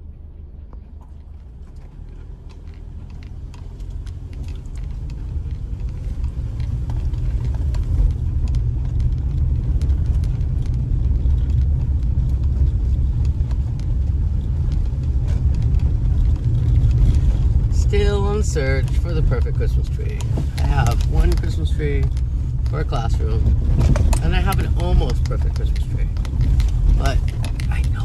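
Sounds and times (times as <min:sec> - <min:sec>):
car driving on dirt road: 0:00.0 - 0:28.0
small ticks and rattles: 0:01.0 - 0:18.0, 0:20.1 - 0:28.0.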